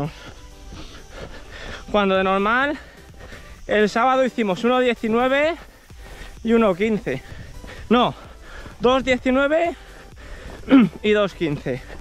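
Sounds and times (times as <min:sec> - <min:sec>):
footsteps on dirt trail: 0:00.0 - 0:12.0
man speaking: 0:01.9 - 0:02.9, 0:03.6 - 0:05.7, 0:06.4 - 0:08.2, 0:08.8 - 0:09.8, 0:10.7 - 0:11.9.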